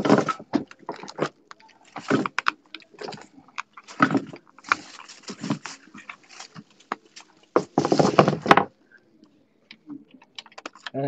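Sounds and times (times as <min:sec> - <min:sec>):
wallet rubbing and scraping: 0:00.0 - 0:08.5
wallet rustles and clicks: 0:00.0 - 0:08.5.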